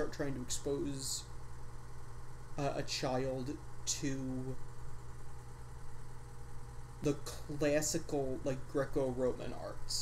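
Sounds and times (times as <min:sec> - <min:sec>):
steady low hum with faint hiss: 0:00.0 - 0:10.0.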